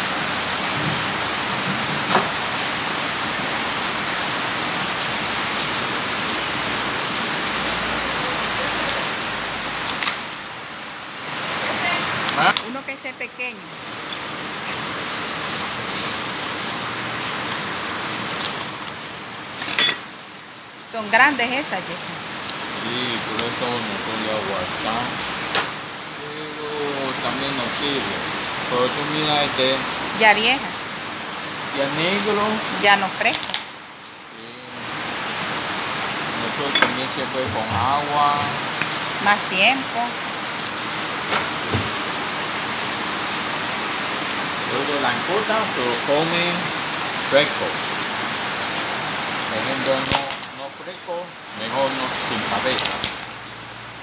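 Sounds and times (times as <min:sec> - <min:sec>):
running water hiss: 0:00.0 - 0:54.0
dull knock: 0:41.7 - 0:42.0.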